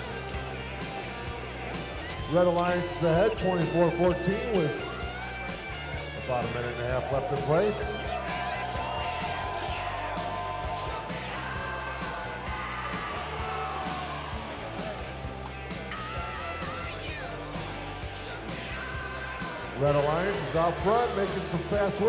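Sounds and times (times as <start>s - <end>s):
crowd voices and shouts: 0.0s - 22.0s
rock music with guitar: 0.0s - 22.0s.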